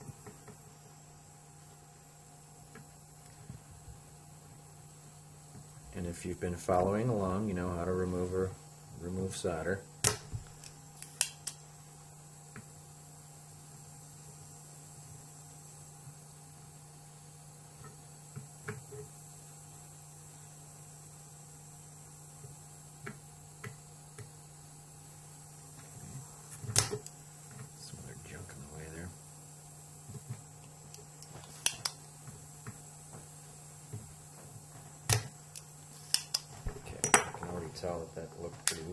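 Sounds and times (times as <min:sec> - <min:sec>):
steady low hum: 0:00.0 - 0:38.9
desoldering pump clicks: 0:10.0 - 0:11.6, 0:30.6 - 0:32.0, 0:35.1 - 0:37.3
plunger snapping: 0:30.9 - 0:32.0, 0:35.1 - 0:37.3.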